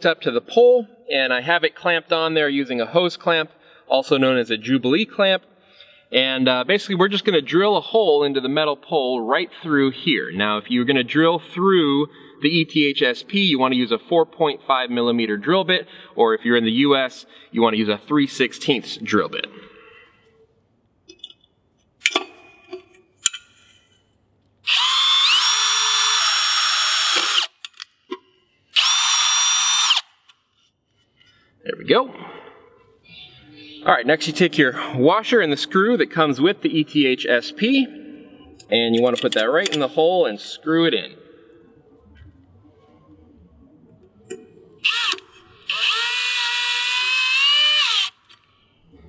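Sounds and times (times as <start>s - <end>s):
power drill boring into metal: 24.6s - 27.8s, 28.8s - 30.3s, 44.8s - 48.2s.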